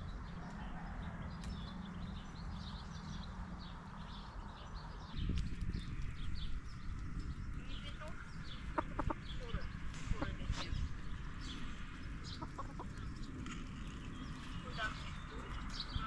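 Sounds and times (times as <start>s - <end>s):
small birds chirping: 0.0s - 16.0s
steady low rumble: 0.0s - 16.0s
hens clucking: 8.0s - 10.8s, 12.0s - 13.4s.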